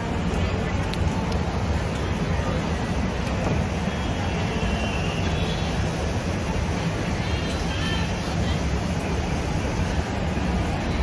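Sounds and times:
bus engine rumble: 0:00.0 - 0:11.0
city traffic: 0:00.0 - 0:11.0
faint voices: 0:00.0 - 0:11.0.

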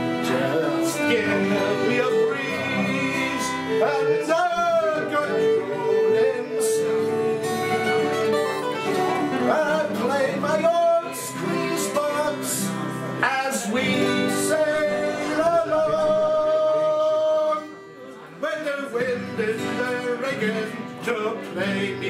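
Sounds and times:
acoustic guitars strumming: 0:00.0 - 0:22.0
person singing: 0:00.0 - 0:22.0.

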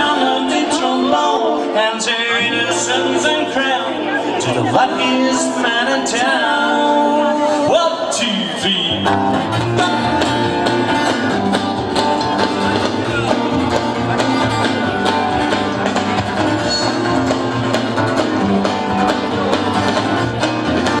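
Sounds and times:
strummed acoustic guitars: 0:00.0 - 0:21.0
electric bass: 0:08.6 - 0:21.0
plucked strings: 0:09.0 - 0:21.0
steady drum beat: 0:09.1 - 0:21.0.

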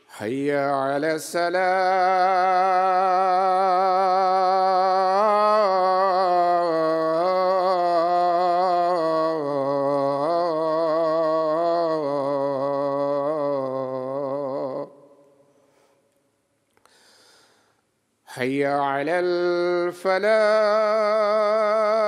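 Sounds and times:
man chanting call to prayer: 0:00.0 - 0:15.1, 0:18.3 - 0:22.0.

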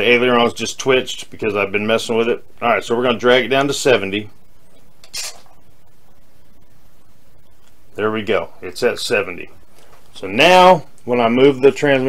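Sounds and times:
low room hiss: 0:00.0 - 0:12.0.

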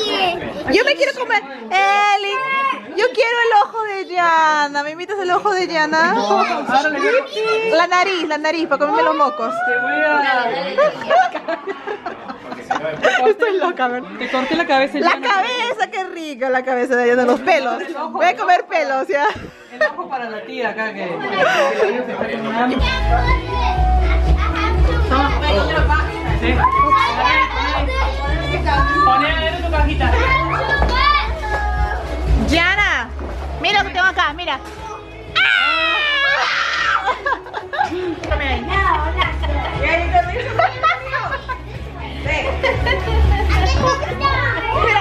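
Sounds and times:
children shouting and playing: 0:00.0 - 0:00.8, 0:01.9 - 0:04.4, 0:06.0 - 0:07.9, 0:08.9 - 0:12.2, 0:22.4 - 0:32.5, 0:34.4 - 0:45.0
background music: 0:21.4 - 0:45.0.

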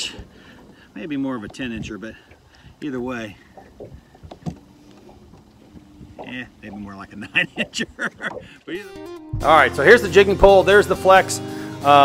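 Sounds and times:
electric trolling motor humming: 0:00.0 - 0:08.5.

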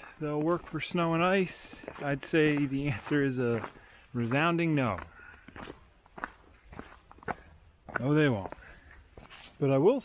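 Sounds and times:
boot footsteps on snow: 0:00.1 - 0:10.0.

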